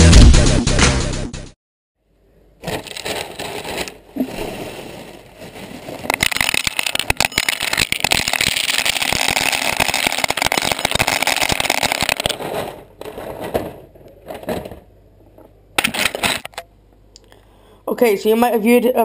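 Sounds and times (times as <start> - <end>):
plastic bag rustling: 2.6 - 14.9
small hard pieces rattling: 4.9 - 14.9.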